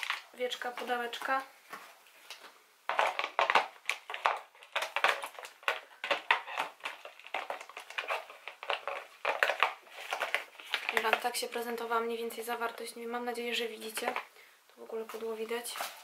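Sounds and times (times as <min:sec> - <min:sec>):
packaging crinkling: 0:00.0 - 0:00.4, 0:02.3 - 0:11.6.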